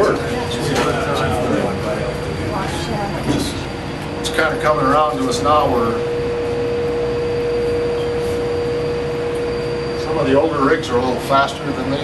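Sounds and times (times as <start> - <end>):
drilling rig machinery drone: 0.0 - 12.0
mid-pitched whine: 0.0 - 12.0.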